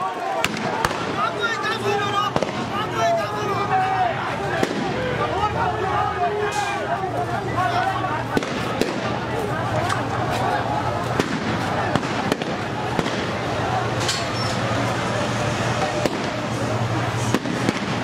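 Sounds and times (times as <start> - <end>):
crowd voices: 0.0 - 18.0
gunshots: 0.4 - 1.2, 2.3 - 2.7, 4.5 - 5.0, 8.3 - 9.2, 11.1 - 13.4, 15.9 - 16.5, 17.3 - 18.0.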